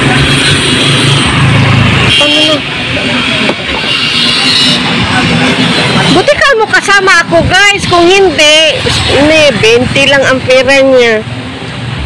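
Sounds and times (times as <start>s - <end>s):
roadside traffic noise: 0.0s - 12.0s
car horn toot: 2.1s - 2.7s.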